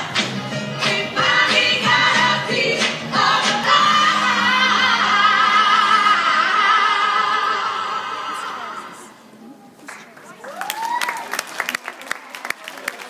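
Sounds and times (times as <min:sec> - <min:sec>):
recorded song: 0:00.0 - 0:09.2
audience whooping and clapping: 0:09.9 - 0:13.0.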